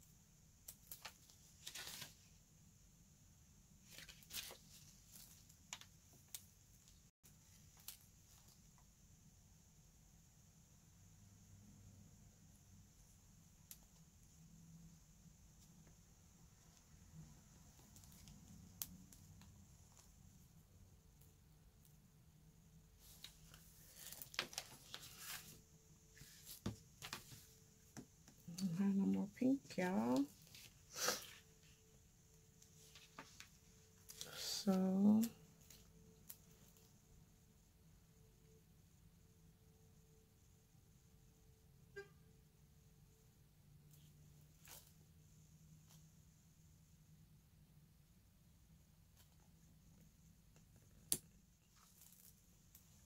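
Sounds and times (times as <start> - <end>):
faint paper rustles: 0.8 - 2.4, 3.8 - 5.9, 23.0 - 27.6, 32.6 - 36.9.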